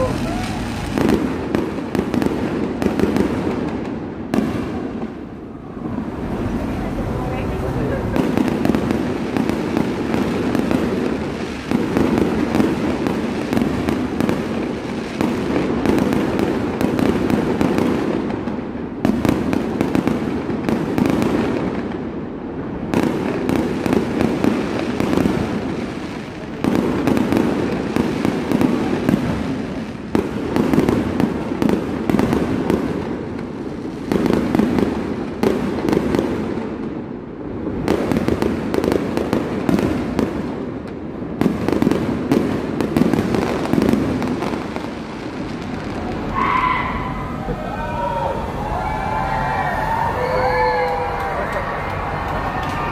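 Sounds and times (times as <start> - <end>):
fireworks shells bursting: 0.0 - 3.8.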